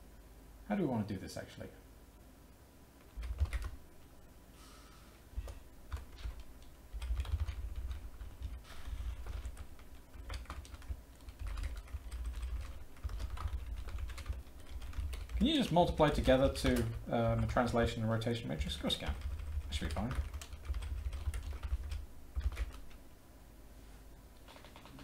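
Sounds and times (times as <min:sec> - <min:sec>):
typing on computer keyboard: 0:03.1 - 0:03.8, 0:05.9 - 0:17.5, 0:18.8 - 0:23.0, 0:24.4 - 0:25.0.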